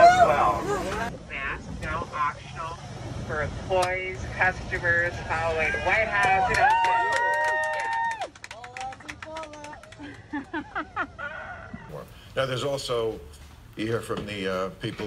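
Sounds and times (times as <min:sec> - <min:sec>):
passengers whooping and cheering: 0:00.0 - 0:01.1, 0:05.4 - 0:08.4
people clapping: 0:06.2 - 0:10.6.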